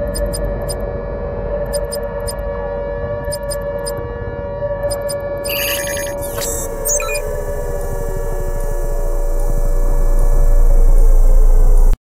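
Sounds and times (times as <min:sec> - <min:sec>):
electronic beeps and glitchy chirps: 0:00.0 - 0:00.8, 0:01.7 - 0:02.4, 0:03.3 - 0:04.0, 0:04.8 - 0:07.3
electronic drone tones: 0:00.0 - 0:00.9, 0:01.6 - 0:02.5, 0:03.2 - 0:04.1, 0:04.8 - 0:12.0.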